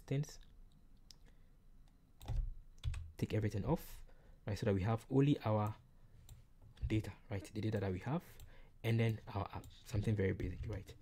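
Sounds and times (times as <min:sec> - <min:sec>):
keyboard keys clicking: 0:02.2 - 0:03.1.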